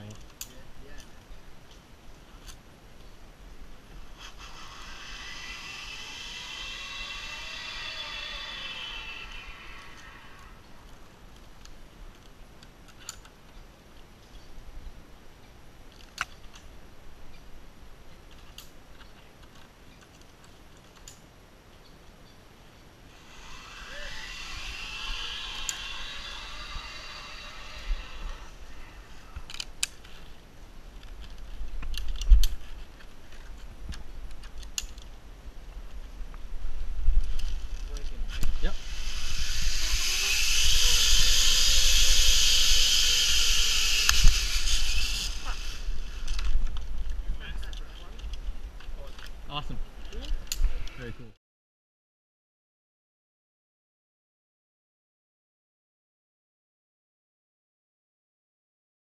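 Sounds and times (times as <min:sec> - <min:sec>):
zip-line pulleys whirring on cable: 0:04.0 - 0:10.7, 0:23.1 - 0:29.7, 0:37.2 - 0:46.6.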